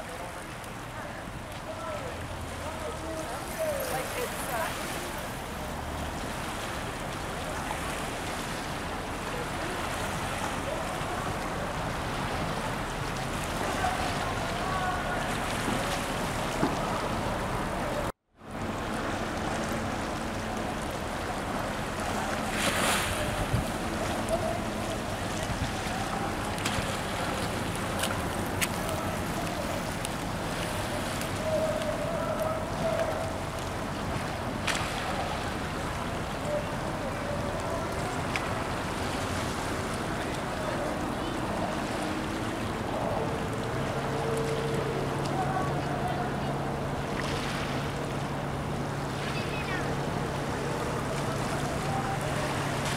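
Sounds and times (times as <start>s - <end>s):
small waves lapping: 0.0s - 52.9s
wind on microphone: 21.4s - 47.2s.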